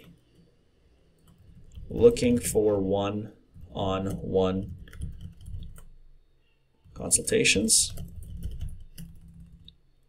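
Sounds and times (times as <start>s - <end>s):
keyboard typing: 3.6s - 6.0s, 6.9s - 9.8s.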